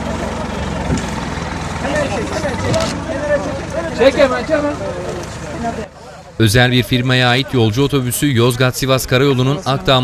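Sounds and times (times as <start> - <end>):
low engine hum: 0.0 - 6.4.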